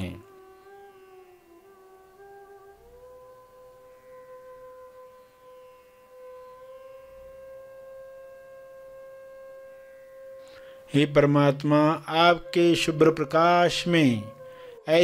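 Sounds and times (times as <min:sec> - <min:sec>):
soft sustained background music: 0:00.0 - 0:15.0.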